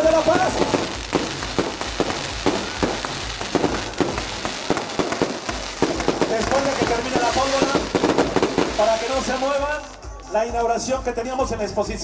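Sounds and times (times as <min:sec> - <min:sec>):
fireworks bangs and crackles: 0:00.0 - 0:10.6.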